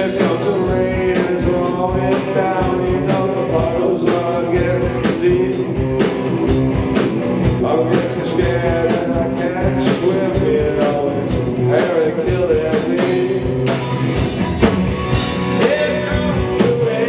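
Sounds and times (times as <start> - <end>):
bass guitar: 0.0 - 17.0
drum kit beat: 0.0 - 17.0
electric guitar: 0.0 - 17.0.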